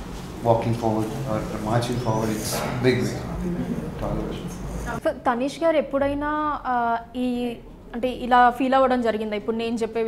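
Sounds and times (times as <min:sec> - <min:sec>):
woman talking: 0:04.8 - 0:10.0.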